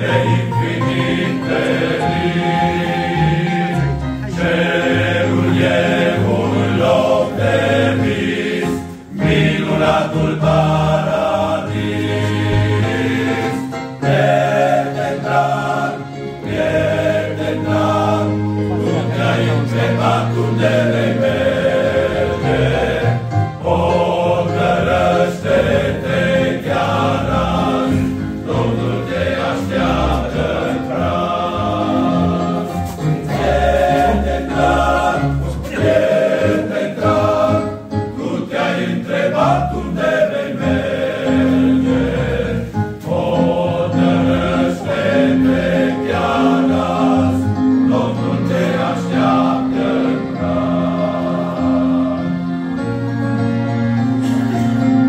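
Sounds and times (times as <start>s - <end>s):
men's choir singing a hymn: 0.0s - 55.0s.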